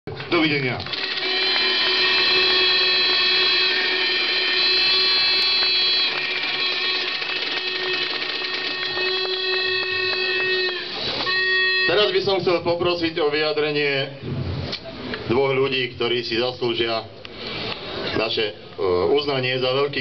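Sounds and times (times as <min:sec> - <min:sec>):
crowd applauding: 0:00.8 - 0:11.5
horns blown in long tones: 0:01.0 - 0:12.6.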